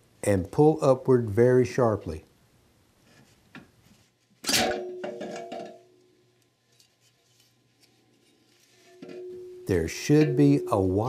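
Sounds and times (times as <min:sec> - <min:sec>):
sharp metallic clank ringing: 0:04.5 - 0:06.0, 0:08.9 - 0:11.0.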